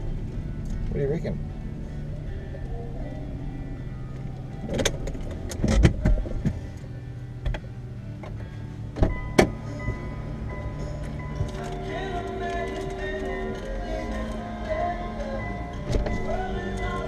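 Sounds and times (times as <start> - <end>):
steady low hum: 0.0 - 17.0
objects handled in car cabin: 4.1 - 14.8, 15.4 - 17.0.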